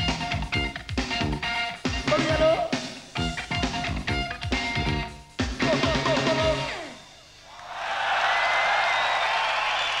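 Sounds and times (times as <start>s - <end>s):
rock band playing: 0.0s - 7.2s
crowd cheering and applauding: 7.5s - 10.0s.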